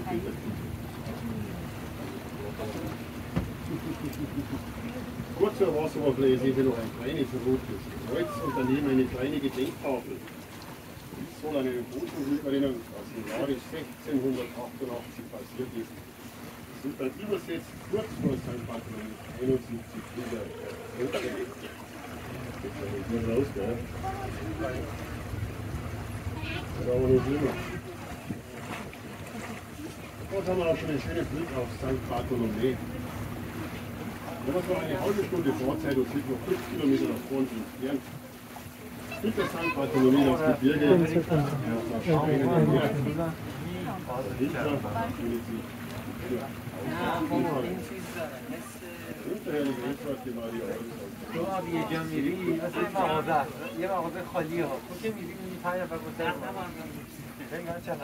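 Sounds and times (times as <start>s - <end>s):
boat motor low hum: 0.0s - 58.0s
water and wind noise: 0.0s - 58.0s
indistinct passenger voices: 7.6s - 9.8s, 19.9s - 37.3s.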